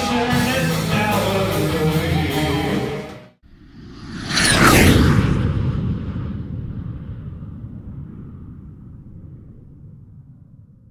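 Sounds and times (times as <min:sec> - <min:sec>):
low rumble of a boom: 0:03.6 - 0:10.9.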